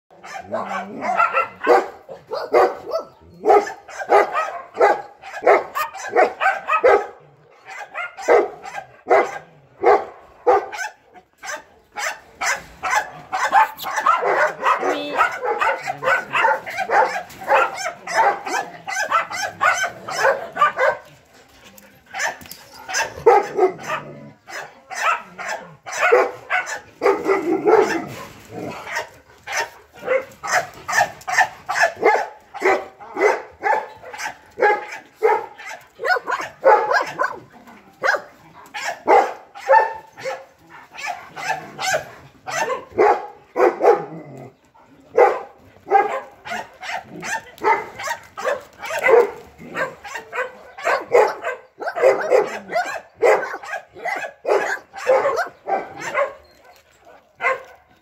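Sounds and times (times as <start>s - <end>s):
dogs barking: 0.1s - 21.2s, 22.1s - 58.0s.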